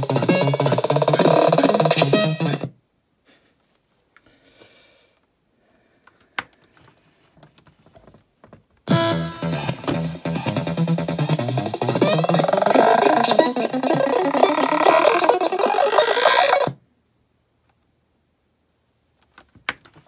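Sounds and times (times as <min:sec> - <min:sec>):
toy playing pitch-bent beats: 0:00.0 - 0:02.7, 0:08.9 - 0:16.8.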